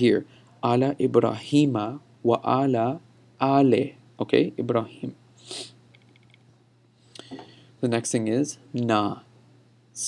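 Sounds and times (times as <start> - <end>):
low steady hum: 0.0 - 10.0
person breathing: 7.0 - 7.8.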